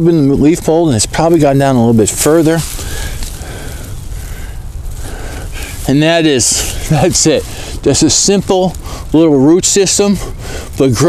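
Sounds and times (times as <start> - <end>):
low rumble: 0.0 - 11.0
rustling of leaves and mulch: 0.0 - 11.0.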